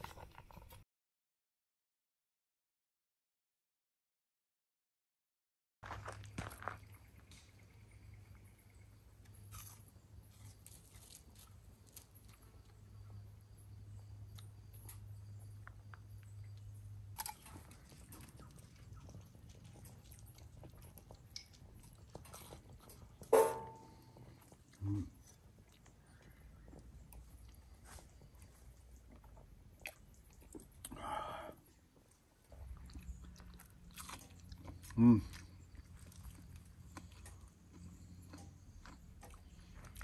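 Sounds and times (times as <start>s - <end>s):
person chewing crisp bread: 9.2s - 40.0s.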